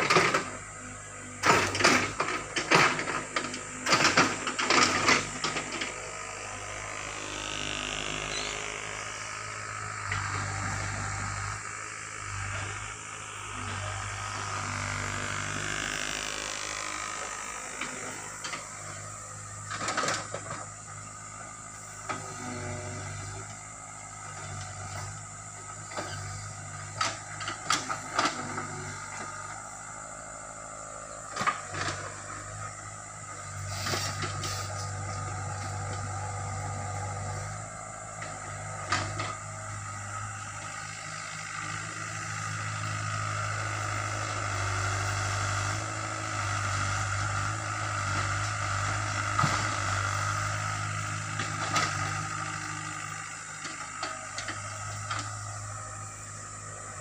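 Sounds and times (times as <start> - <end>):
excavator diesel engine running: 0.0 - 57.0.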